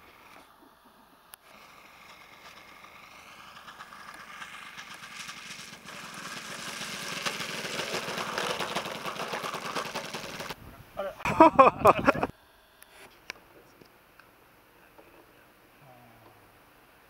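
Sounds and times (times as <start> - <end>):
model airplane engine running: 0.0 - 10.6.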